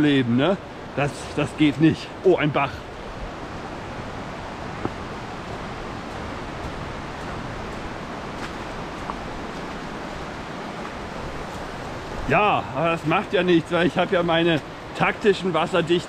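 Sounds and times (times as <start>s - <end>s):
stream water running: 0.0s - 16.0s.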